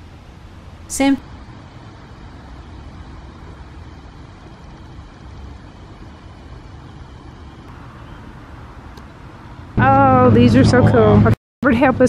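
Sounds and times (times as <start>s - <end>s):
low outdoor rumble with hiss: 0.0s - 12.0s.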